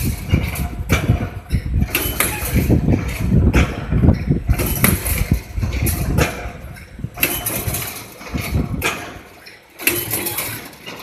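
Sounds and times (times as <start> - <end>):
machine low mechanical rumble: 0.0 - 11.0.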